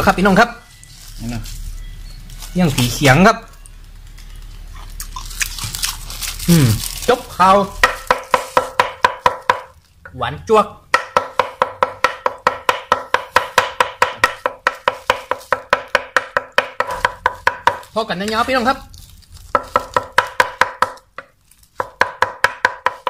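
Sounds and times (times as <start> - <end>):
cleaver chopping meat on wood: 7.8 - 9.8, 10.9 - 17.9, 19.5 - 23.0.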